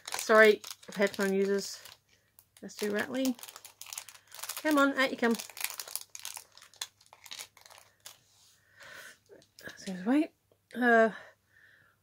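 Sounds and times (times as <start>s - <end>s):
packaging crinkling and rattling: 0.0s - 8.2s.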